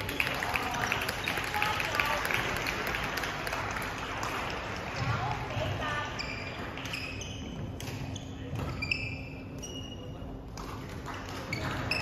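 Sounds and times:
sports shoes squeaking on wood: 6.2 - 10.1.

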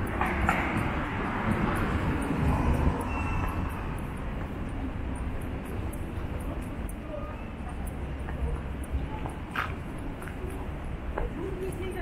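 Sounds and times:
train rumble: 0.0 - 12.0
faint high squeal: 3.0 - 3.9.

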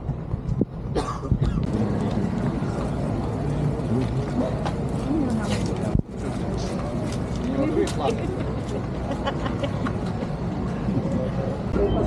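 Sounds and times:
street traffic rumble: 0.0 - 12.0
faint voices: 1.4 - 12.0.

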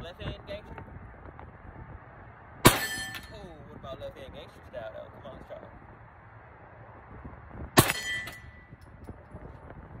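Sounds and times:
pistol shot: 2.6 - 3.2, 7.8 - 8.4
metallic ringing: 2.6 - 3.5, 7.8 - 8.8.

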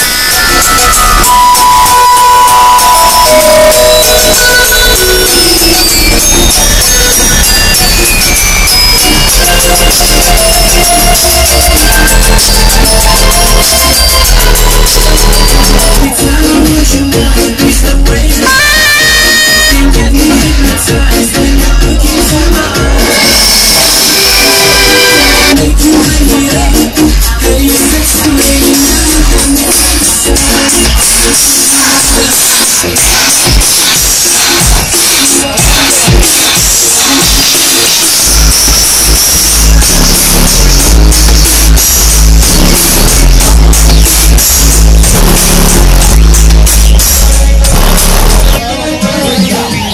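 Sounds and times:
loud music through car speakers: 0.0 - 49.9.

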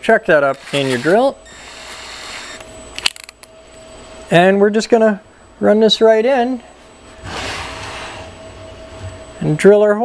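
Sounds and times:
electric drill motor whine: 0.5 - 2.7
drill bit cutting plastic: 0.6 - 2.6.

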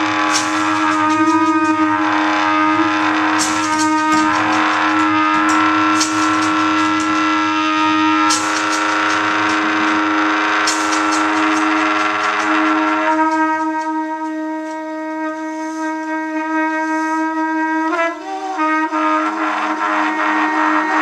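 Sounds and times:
free improvised ensemble music: 0.0 - 21.0.

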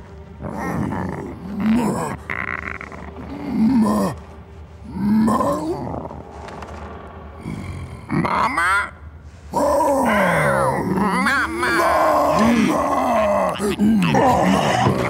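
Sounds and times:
creature growls and grunts: 0.4 - 4.2, 4.8 - 6.2, 7.4 - 8.9, 9.5 - 15.0.

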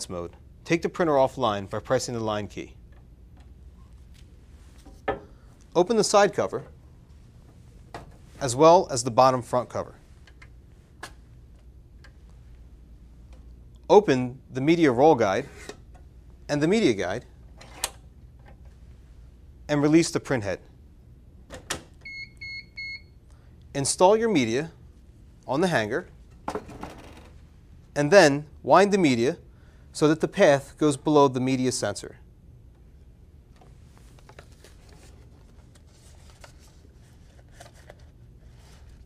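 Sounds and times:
low steady hum: 0.0 - 39.0
paper label rustling: 33.5 - 39.0.

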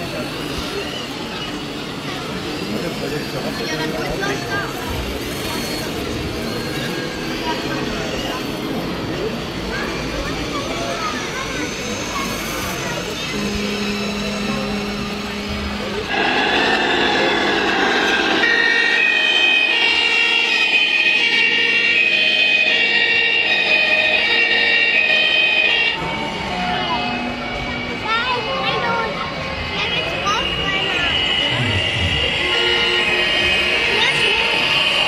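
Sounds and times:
crowd chatter in a hall: 0.0 - 35.0
two-tone toy siren: 18.0 - 27.4, 30.0 - 35.0.

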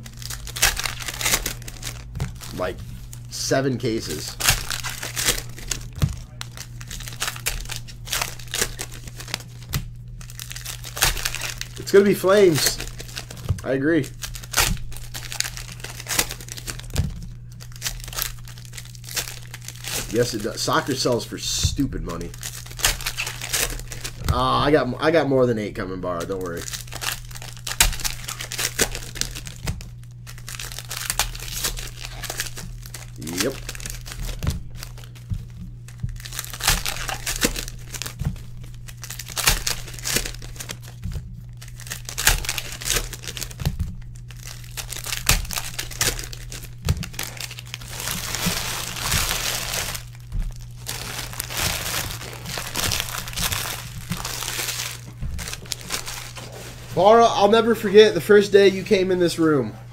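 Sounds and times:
foil wrappers crinkling and tearing: 0.0 - 58.0
steady low hum: 0.0 - 59.9.

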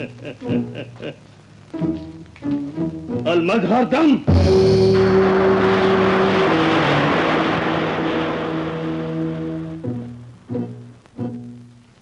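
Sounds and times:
held orchestral notes: 4.3 - 11.0
loud rushing hiss: 4.5 - 10.0.

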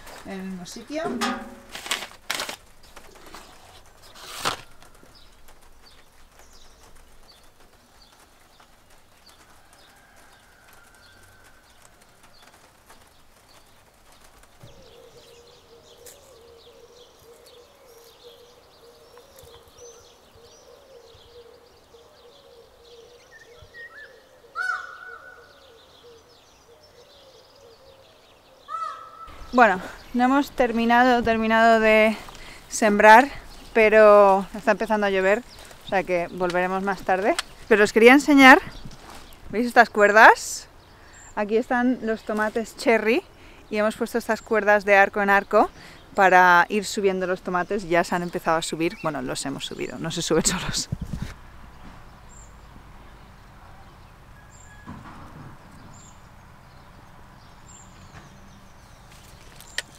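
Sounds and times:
birds chirping faintly: 0.0 - 59.9.

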